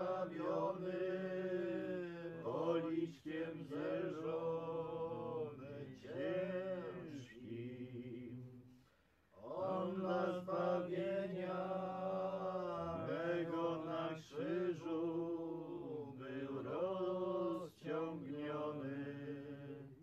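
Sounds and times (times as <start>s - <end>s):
unaccompanied voices singing a hymn: 0.0s - 20.0s.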